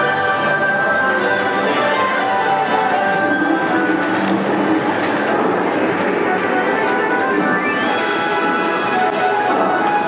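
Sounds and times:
rattling rumbling noise: 2.4 - 10.0.

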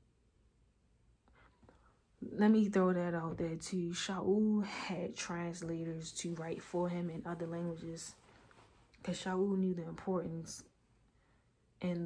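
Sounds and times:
faint soft sound: 5.2 - 11.6.

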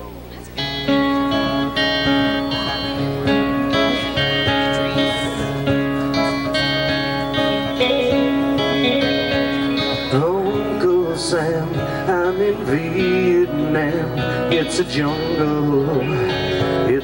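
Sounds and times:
band strumming guitars: 0.0 - 17.0
person singing: 0.9 - 17.0.

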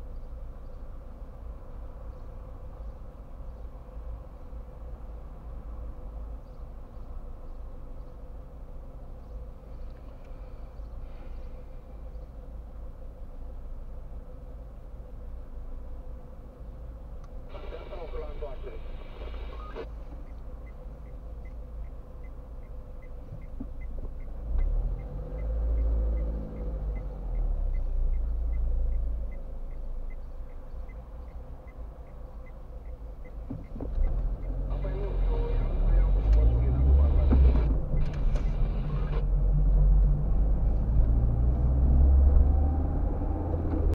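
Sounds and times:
car engine idling and revving: 0.0 - 43.9
turn indicator ticking: 19.9 - 35.1, 35.9 - 38.5.

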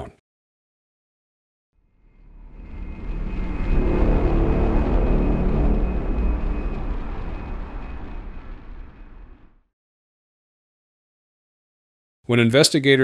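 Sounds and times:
thin high whine: 1.8 - 9.7
jet aircraft roar: 1.9 - 9.6.

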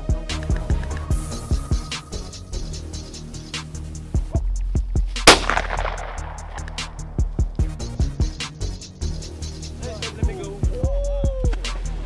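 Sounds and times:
background music with drum beat: 0.0 - 12.0
gunshot with echo: 5.2 - 7.0.

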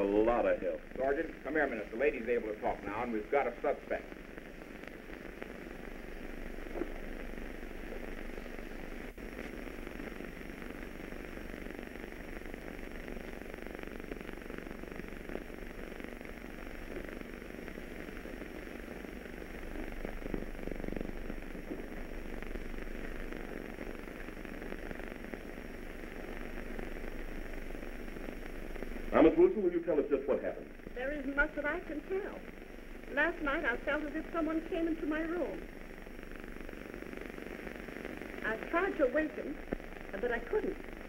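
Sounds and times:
film soundtrack hiss and crackle: 0.0 - 41.0
low hum: 0.0 - 41.0.

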